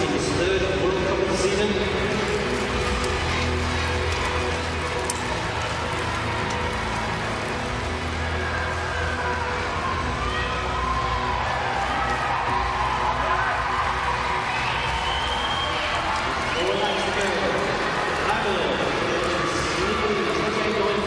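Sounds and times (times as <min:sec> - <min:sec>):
crowd cheering: 0:00.0 - 0:21.0
music playing in arena: 0:00.0 - 0:21.0.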